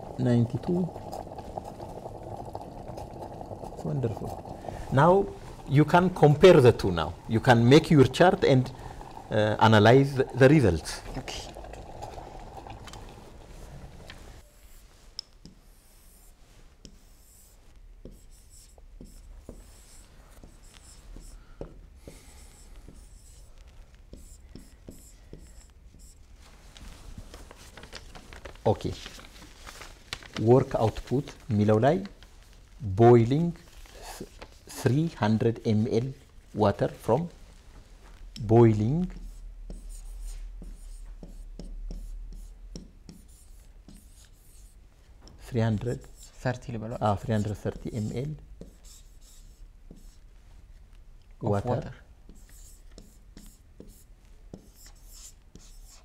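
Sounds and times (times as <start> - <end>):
pen writing on whiteboard screen: 15.4 - 26.2, 39.0 - 46.5, 47.2 - 50.3, 51.8 - 56.0.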